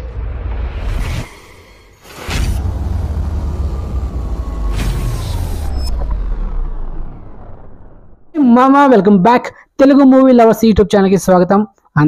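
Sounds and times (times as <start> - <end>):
whoosh: 0.0 - 8.4
deep steady rumble: 2.3 - 8.4.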